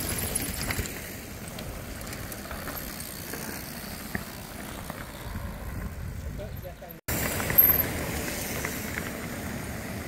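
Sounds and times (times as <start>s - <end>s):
bike tyres on loose gravel: 0.0s - 10.0s
wind rumble on microphone: 5.2s - 6.9s.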